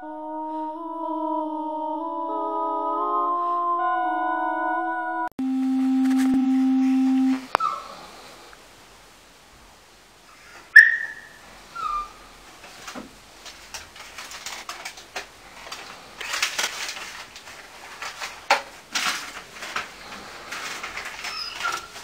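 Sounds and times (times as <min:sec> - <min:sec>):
steady low tone: 0:00.0 - 0:07.6
short falling squeaks: 0:21.2 - 0:21.9.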